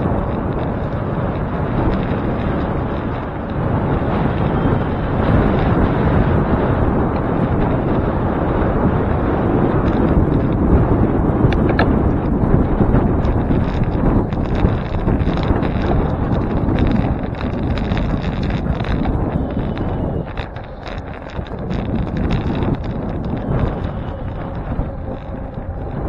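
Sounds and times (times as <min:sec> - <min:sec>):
bicycle rattles and knocks: 0:00.0 - 0:26.0
tyres rumbling on pavement: 0:00.0 - 0:26.0
wind buffeting microphone: 0:00.0 - 0:26.0.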